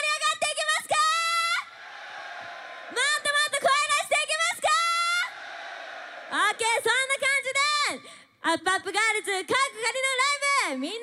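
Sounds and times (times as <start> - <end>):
woman shouting into microphone: 0.0 - 1.7, 2.9 - 5.3
audience cheering: 1.7 - 3.8, 4.8 - 6.6.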